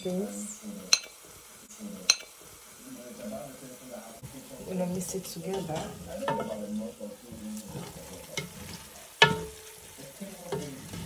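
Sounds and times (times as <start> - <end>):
frying sizzle: 0.0 - 11.0
spoon scraping food off plate: 7.4 - 8.9.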